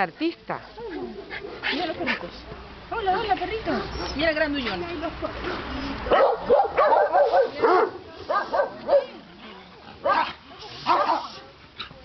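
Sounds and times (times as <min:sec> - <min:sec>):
dogs barking and yipping: 0:05.5 - 0:12.0.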